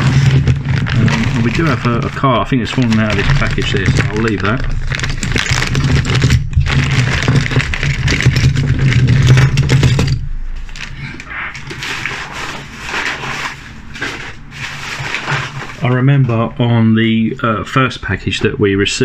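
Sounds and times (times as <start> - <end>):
metal toys clicking and knocking: 0.0 - 11.0
plastic bag crinkling: 0.0 - 16.6.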